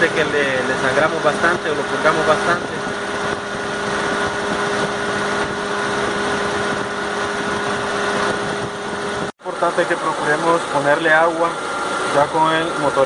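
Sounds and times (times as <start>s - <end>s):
car engine hum: 0.0s - 13.0s
water pump whine: 0.0s - 13.0s.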